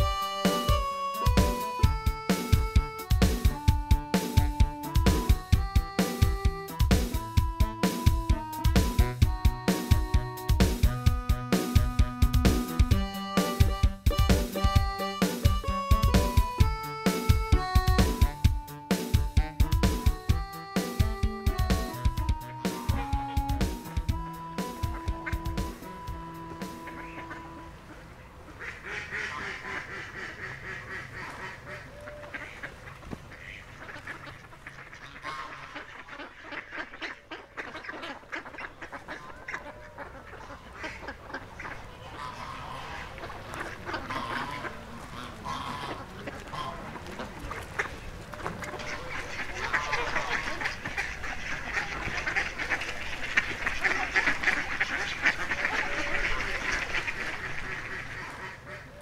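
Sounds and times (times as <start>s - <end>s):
ducks quacking: 0.0s - 59.0s
waterfowl calling: 0.0s - 59.0s.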